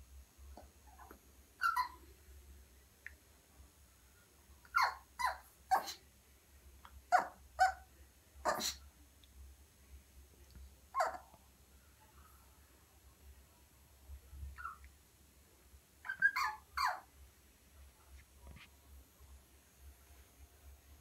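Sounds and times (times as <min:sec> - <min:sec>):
small dog barking: 0:01.0 - 0:02.0, 0:04.7 - 0:06.0, 0:07.1 - 0:08.8, 0:10.9 - 0:11.3, 0:16.0 - 0:17.1.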